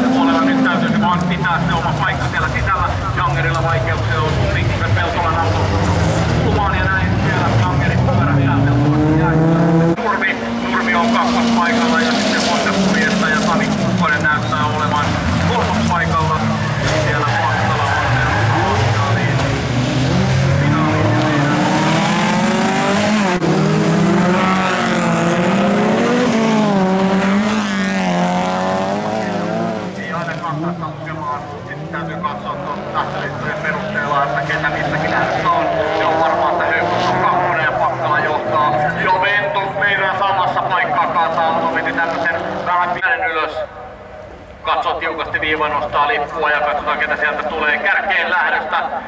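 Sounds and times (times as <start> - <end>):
racing car engines revving: 0.0 - 49.0.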